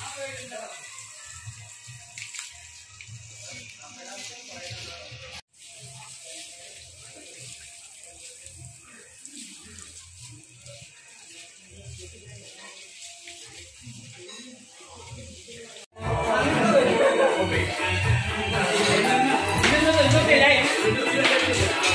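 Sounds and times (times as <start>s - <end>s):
music: 0.0s - 8.5s, 9.8s - 21.9s
steady hiss: 0.0s - 15.9s
faint background voices: 0.0s - 21.9s.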